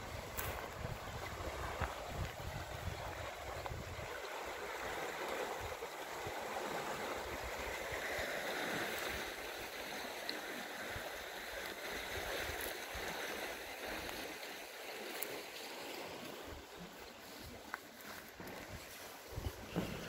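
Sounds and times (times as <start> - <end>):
wind rumble on microphone: 0.0 - 5.0, 18.4 - 20.0
water rushing in a canal: 0.0 - 20.0.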